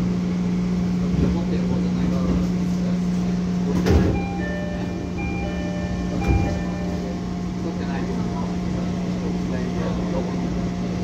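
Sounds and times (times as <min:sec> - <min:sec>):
train humming: 0:00.0 - 0:11.0
bell-like chime melody: 0:04.2 - 0:07.0.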